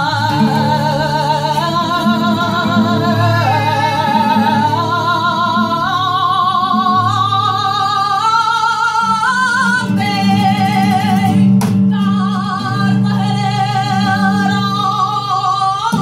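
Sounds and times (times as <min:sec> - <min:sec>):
acoustic flamenco guitar: 0:00.0 - 0:16.0
woman singing flamenco: 0:00.0 - 0:16.0.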